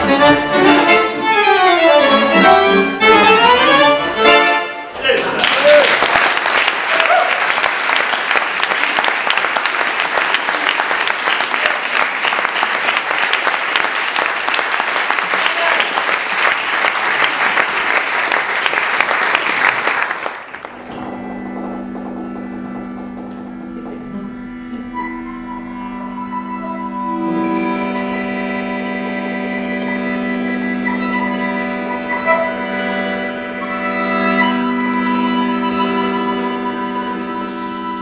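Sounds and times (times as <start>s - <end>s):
accordion held chords: 0.0s - 5.0s, 20.6s - 38.0s
audience applauding: 5.0s - 21.2s.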